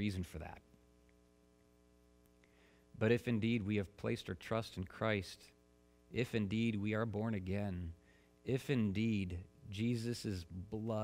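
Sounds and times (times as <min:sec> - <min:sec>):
faint steady hum: 0:00.0 - 0:11.0
soft hiss: 0:00.0 - 0:11.0.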